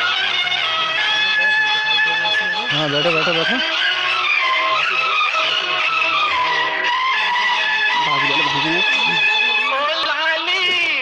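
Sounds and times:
faint voices: 0.0s - 11.0s
music with bending held tones: 0.0s - 11.0s.

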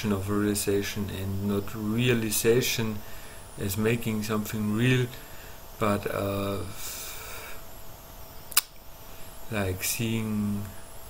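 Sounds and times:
soft hiss: 8.3s - 11.0s
sharp click: 8.5s - 8.8s.

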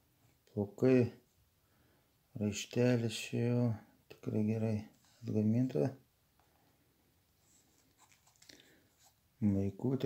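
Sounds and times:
light ticks of handling: 7.5s - 9.2s.

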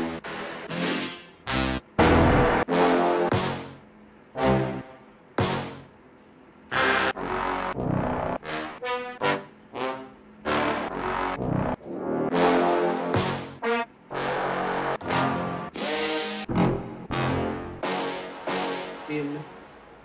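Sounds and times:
brass horn stabs: 0.0s - 3.8s, 4.4s - 5.9s, 6.7s - 19.1s.

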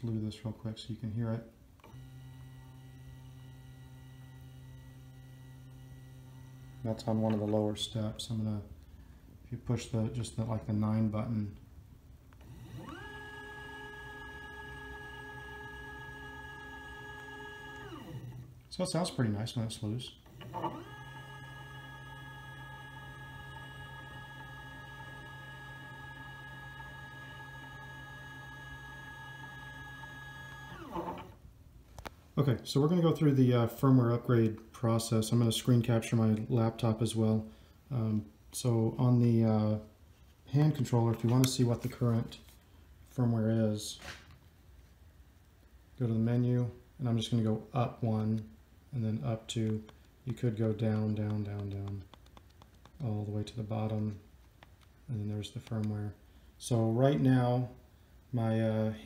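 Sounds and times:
drive motor humming: 1.8s - 7.8s, 12.4s - 31.4s.

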